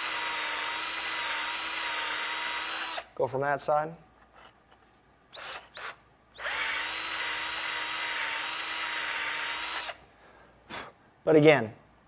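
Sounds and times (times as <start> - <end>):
cordless drill whining: 0.0 - 3.1, 5.3 - 10.0.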